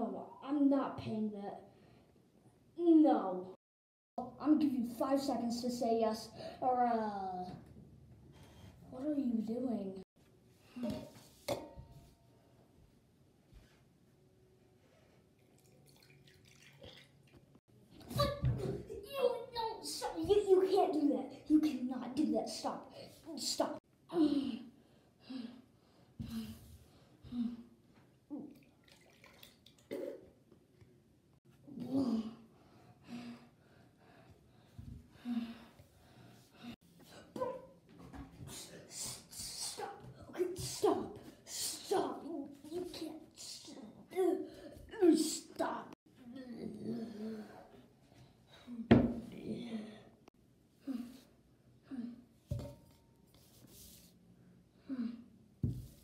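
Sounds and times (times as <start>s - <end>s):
person gulping water: 28.5s - 30.4s.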